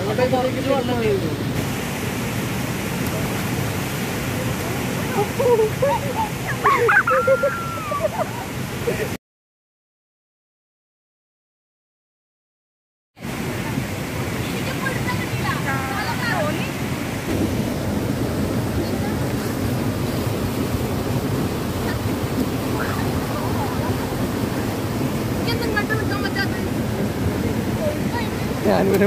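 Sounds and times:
stream rushing over rocks: 0:00.0 - 0:09.2, 0:13.2 - 0:29.0.

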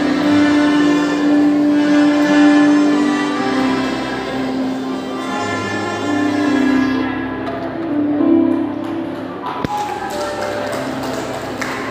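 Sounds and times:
melodicas playing together: 0:00.0 - 0:11.9.

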